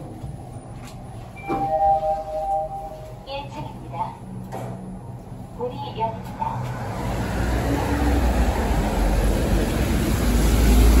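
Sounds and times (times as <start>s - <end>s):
low rumble of vehicles: 0.0s - 11.0s
traffic on wet road: 6.5s - 11.0s.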